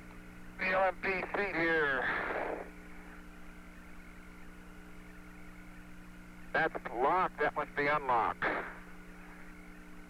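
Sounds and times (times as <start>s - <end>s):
radio hum and hiss: 0.0s - 10.0s
burst of radio static: 0.6s - 2.8s, 6.5s - 9.0s.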